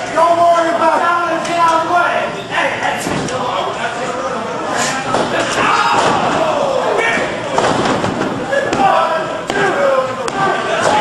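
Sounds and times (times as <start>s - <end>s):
people yelling: 5.1s - 7.7s, 8.4s - 11.0s.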